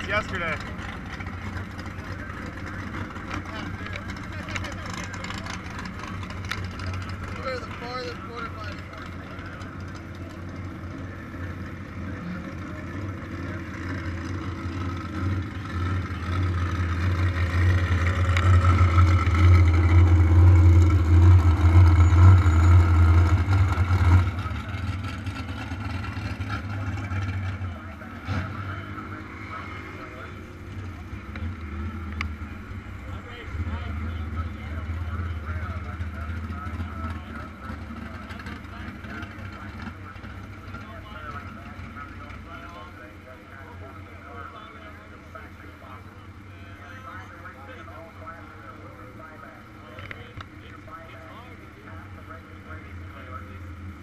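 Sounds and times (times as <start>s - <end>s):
voices in background: 0.0s - 21.2s, 21.8s - 54.0s
low engine drone: 0.0s - 54.0s.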